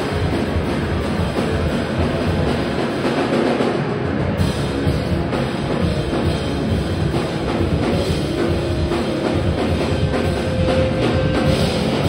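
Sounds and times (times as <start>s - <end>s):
live band playing loud: 0.0s - 12.0s
low drum beats: 0.0s - 12.0s.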